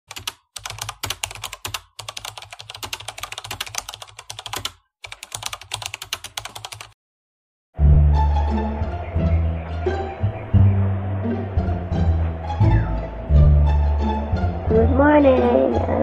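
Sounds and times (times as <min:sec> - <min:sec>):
keyboard typing: 0:00.1 - 0:07.0.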